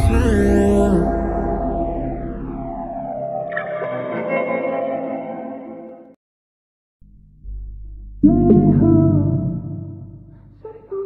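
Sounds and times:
downward-sweeping tones: 0:00.0 - 0:06.0
effects-heavy instrumental chords: 0:00.0 - 0:06.1
bright tone layer: 0:00.0 - 0:06.2.

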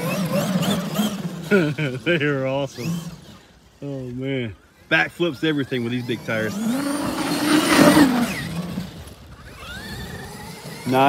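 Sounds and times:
electric motor whining: 0:00.0 - 0:02.0, 0:02.6 - 0:04.1, 0:05.0 - 0:11.0.

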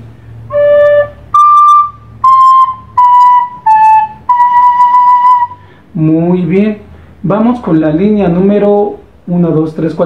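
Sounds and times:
soprano recorder playing notes: 0:00.4 - 0:05.7.

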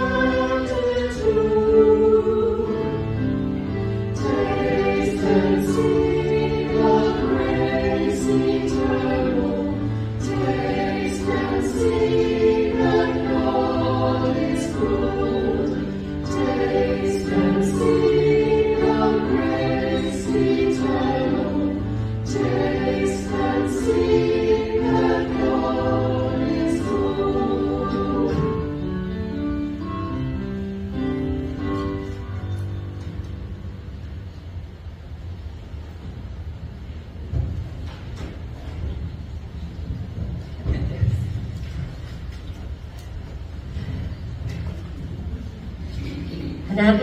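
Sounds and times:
choir singing: 0:00.0 - 0:29.1.

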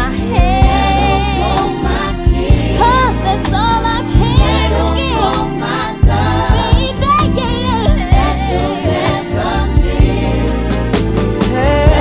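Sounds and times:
bass line: 0:00.0 - 0:12.0
male singer: 0:11.4 - 0:12.0.

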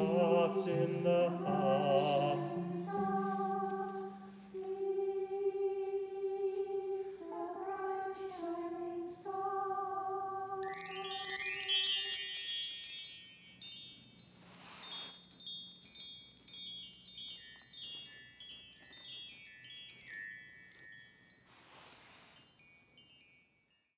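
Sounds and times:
choir holding a chord: 0:00.0 - 0:10.6
chime tubes ringing: 0:10.6 - 0:23.9.

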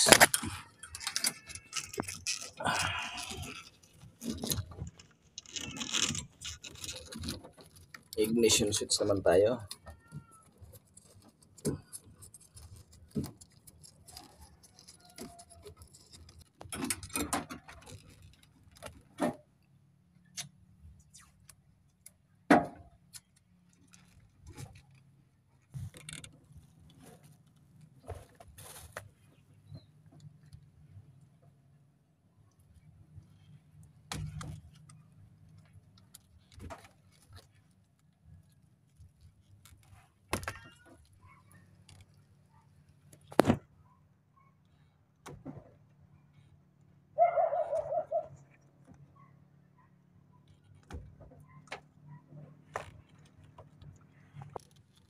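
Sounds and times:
clicks and rustles of wiring: 0:00.0 - 0:31.5, 0:32.5 - 0:43.8, 0:44.6 - 0:47.0, 0:50.3 - 0:55.0.

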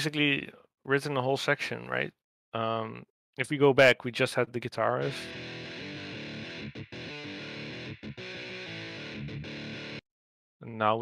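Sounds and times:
distorted electric guitar riff: 0:05.0 - 0:10.0.

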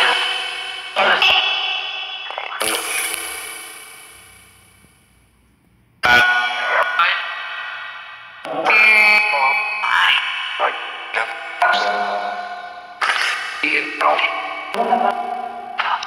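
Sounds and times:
echoing chopped voice snippets: 0:00.0 - 0:03.5, 0:06.0 - 0:16.0.

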